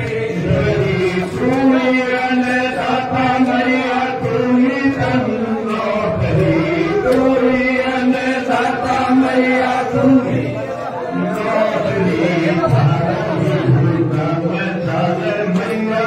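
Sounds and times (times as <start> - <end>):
voices chanting in unison: 0.0 - 16.0.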